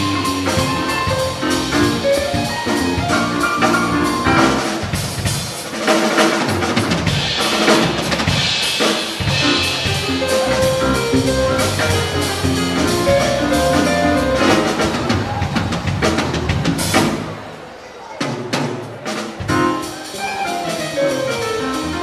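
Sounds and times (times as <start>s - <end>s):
jazz band playing live: 0.0s - 17.6s, 18.2s - 22.0s
drum kit: 0.0s - 22.0s.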